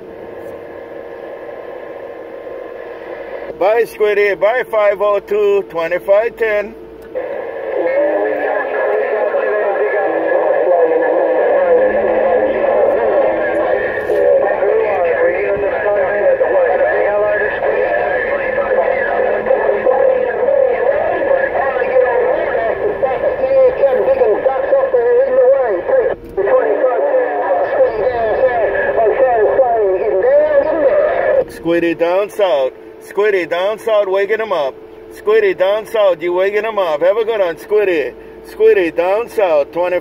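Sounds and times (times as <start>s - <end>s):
low steady tone: 0.0s - 40.0s
garbled radio voices: 3.0s - 40.0s.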